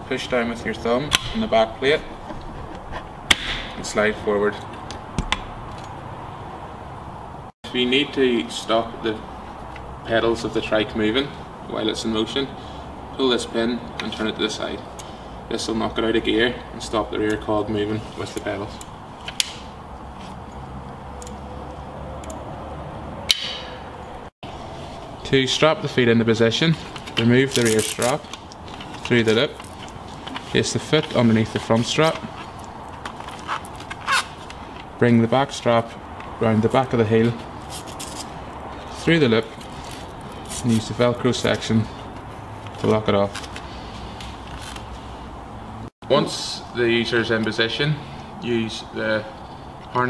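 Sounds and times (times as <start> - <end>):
sharp metallic click: 18.4 - 19.7, 23.3 - 23.8.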